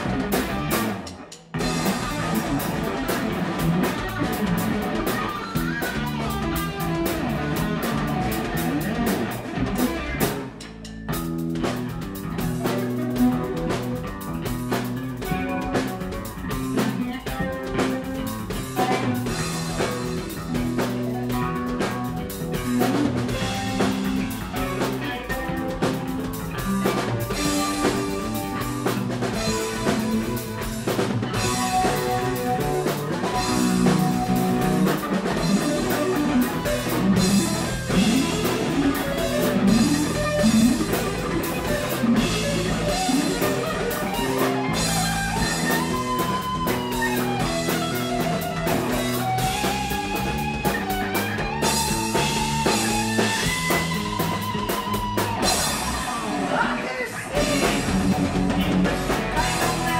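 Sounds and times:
rock band playing: 0:00.0 - 0:59.9.

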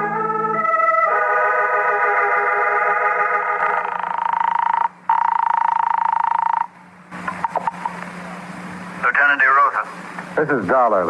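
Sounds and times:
telephone buzzing ring: 0:03.2 - 0:06.7
telephone line clicks: 0:03.6 - 0:06.7.

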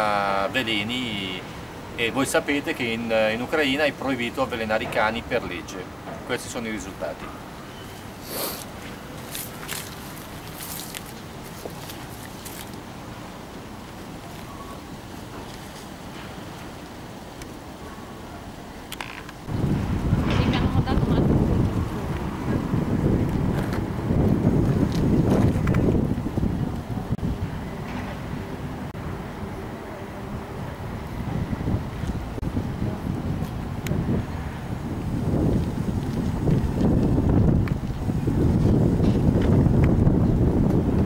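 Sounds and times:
wind buffeting microphone: 0:19.3 - 0:41.0.

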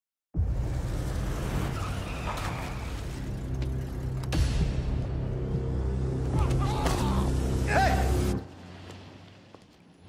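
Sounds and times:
tyres on wet pavement: 0:00.5 - 0:04.9, 0:08.4 - 0:10.0.

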